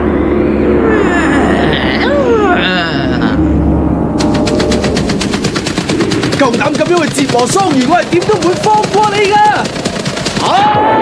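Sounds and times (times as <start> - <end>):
rapid rattling clicks: 4.2 - 10.7.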